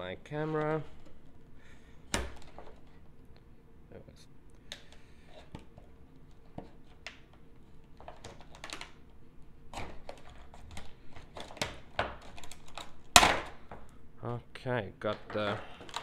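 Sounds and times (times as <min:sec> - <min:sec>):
plastic clicking and crackling: 0:09.8 - 0:13.5.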